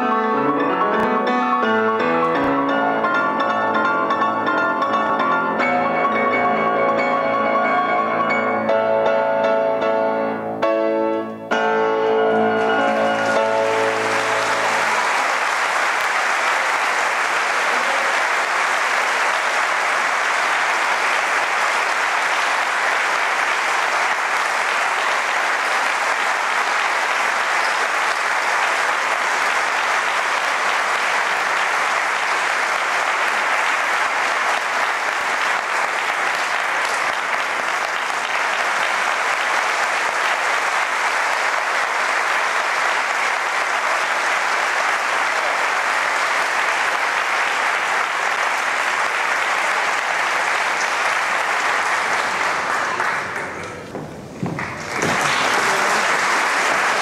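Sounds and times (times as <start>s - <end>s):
audience applauding: 2.0s - 8.7s, 11.5s - 57.0s.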